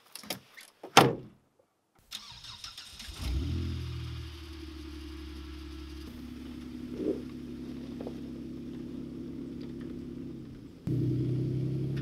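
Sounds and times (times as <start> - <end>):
car engine starting and idling: 2.0 - 12.0.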